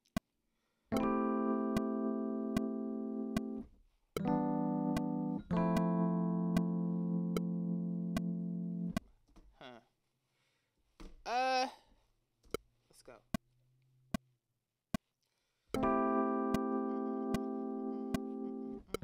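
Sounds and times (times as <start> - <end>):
sustained keyboard chords: 0.9 - 9.0, 15.8 - 19.0
metronome clicking: 1.7 - 3.6, 4.2 - 9.0, 16.5 - 19.0.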